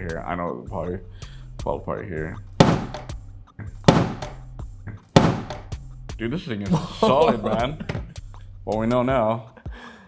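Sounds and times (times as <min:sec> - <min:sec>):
background music beat: 0:00.0 - 0:10.0.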